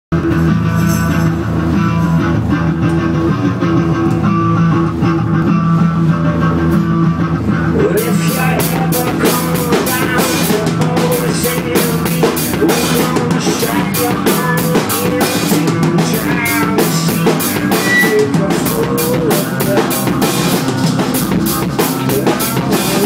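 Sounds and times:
drum kit beat: 0.1 - 23.0.

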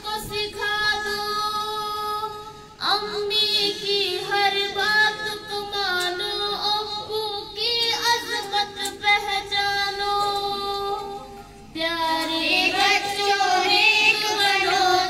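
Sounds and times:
girls singing together: 0.0 - 15.0.

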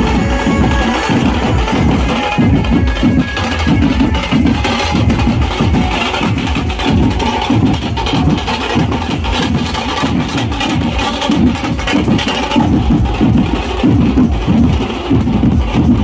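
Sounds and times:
barrel drums beating fast: 0.0 - 16.0
procession band music: 0.0 - 16.0.

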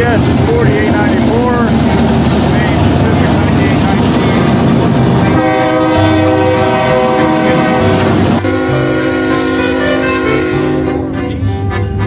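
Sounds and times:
freight locomotives rumbling past: 0.0 - 12.0
locomotive air horn chord: 5.2 - 12.0.

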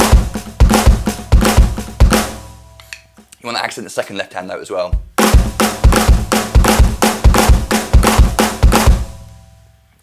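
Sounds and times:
electronic drum kit: 0.0 - 3.3, 4.8 - 9.3.

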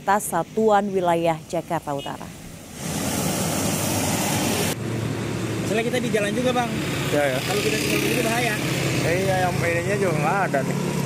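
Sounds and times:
traffic on wet road: 1.9 - 11.0.

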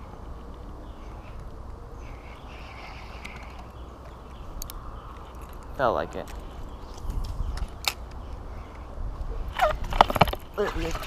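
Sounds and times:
bird calling: 0.0 - 11.0
steady low rumble: 0.0 - 11.0.

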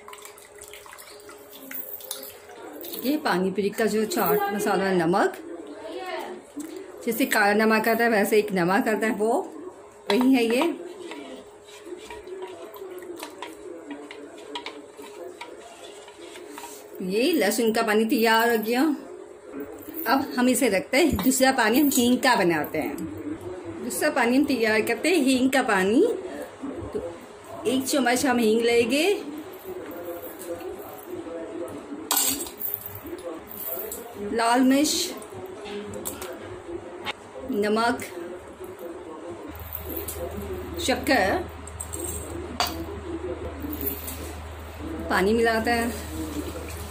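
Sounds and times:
liquid sloshing in metal bowl: 0.0 - 3.2.

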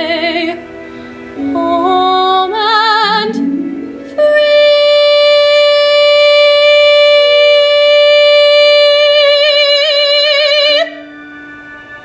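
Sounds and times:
instrumental accompaniment: 0.0 - 12.0
woman singing a high note: 1.4 - 11.1.

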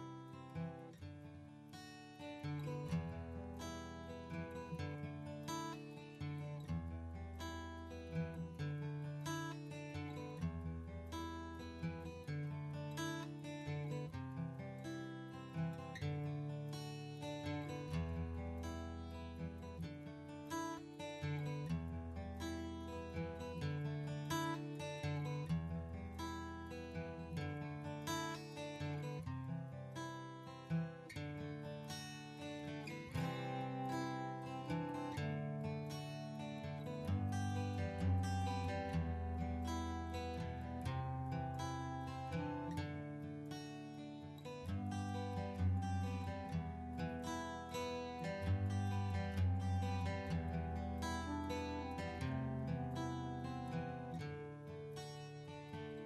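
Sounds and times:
acoustic guitar strumming chords: 0.0 - 56.0.

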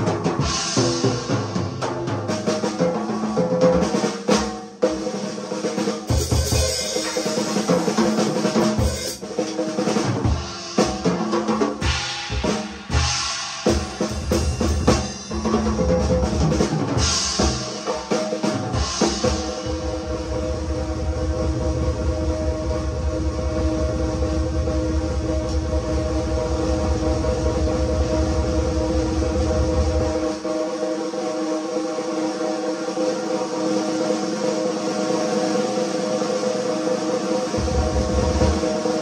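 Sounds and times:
drum solo: 0.0 - 39.0
cymbals ringing: 6.2 - 8.0
bass drum pulsing: 37.6 - 39.0.

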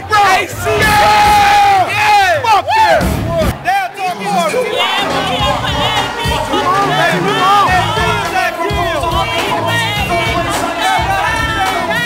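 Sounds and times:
live crowd: 0.0 - 12.0.

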